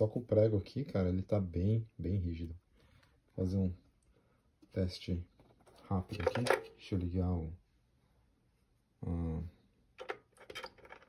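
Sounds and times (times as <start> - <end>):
plastic clicks and rattles: 5.5 - 6.8, 10.0 - 11.0.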